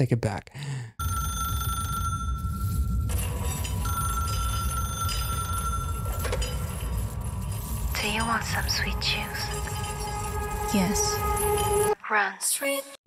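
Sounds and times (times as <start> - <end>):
telephone ringing: 1.0 - 7.7
low rumbling drone: 1.9 - 12.0.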